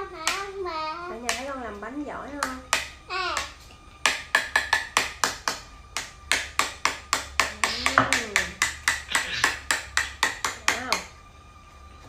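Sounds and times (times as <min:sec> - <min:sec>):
fast sharp taps: 0:02.4 - 0:11.1.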